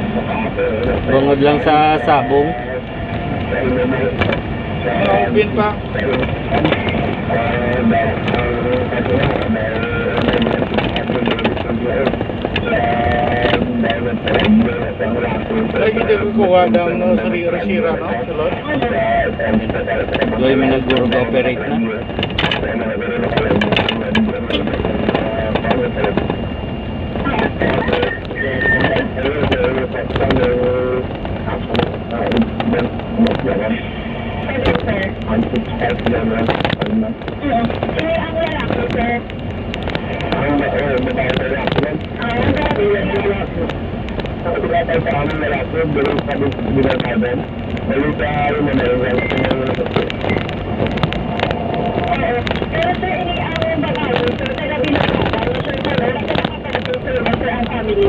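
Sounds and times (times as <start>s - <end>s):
indistinct talking: 0.0s - 58.0s
vehicle running noise: 0.0s - 58.0s
wind and road noise: 0.0s - 58.0s
wind buffeting microphone: 0.0s - 58.0s.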